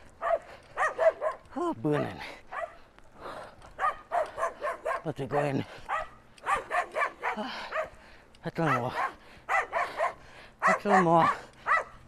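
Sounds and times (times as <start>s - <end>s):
dog barking fast: 0.2s - 2.8s, 3.8s - 8.0s, 8.6s - 12.0s.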